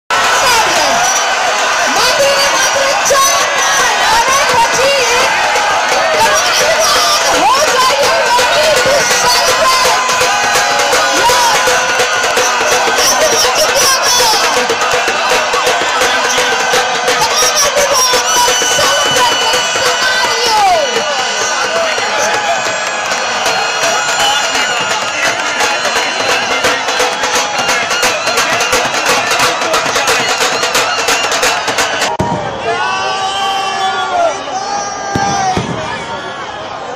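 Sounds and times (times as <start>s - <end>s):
crowd clapping: 0.1s - 32.4s
loud music with drum beat: 0.1s - 32.4s
crowd cheering and shouting: 0.1s - 36.9s.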